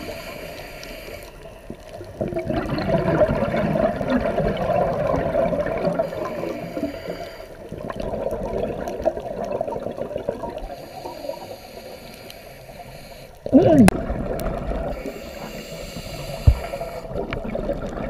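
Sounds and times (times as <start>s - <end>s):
scuba exhaust bubbles underwater: 0.0s - 18.0s.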